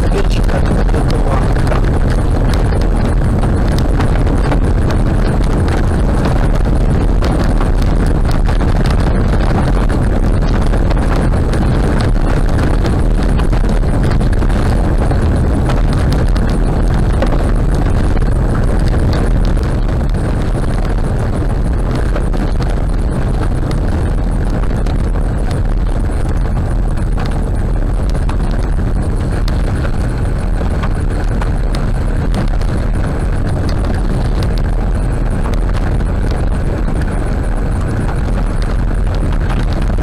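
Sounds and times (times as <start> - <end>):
gravel clicks and rattles: 0.0 - 40.0
tyres rumbling on gravel: 0.0 - 40.0.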